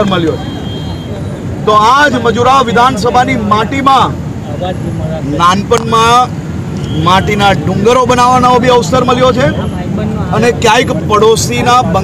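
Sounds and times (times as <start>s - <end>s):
man speaking: 1.6s - 12.0s.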